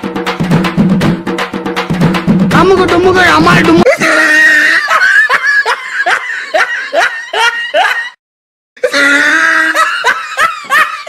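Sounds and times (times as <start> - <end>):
high-pitched laughing: 3.8 - 8.2, 8.8 - 11.0.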